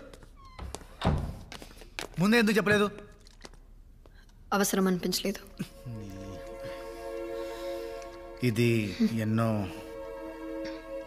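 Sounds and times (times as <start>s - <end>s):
door squeak: 0.3s - 1.5s.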